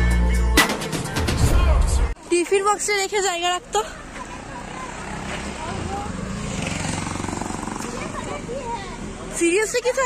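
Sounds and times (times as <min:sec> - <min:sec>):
bus engine rumbling: 0:01.4 - 0:10.0.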